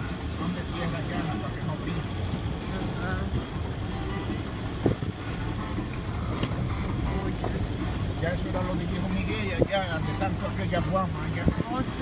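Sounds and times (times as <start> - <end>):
vehicle engine and tyre rumble: 0.0 - 12.0.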